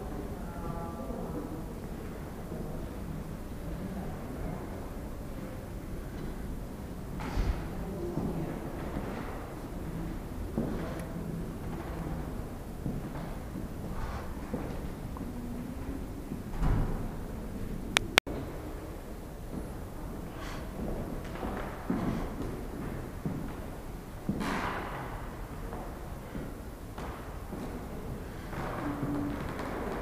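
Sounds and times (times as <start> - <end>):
low room rumble: 0.0 - 30.0.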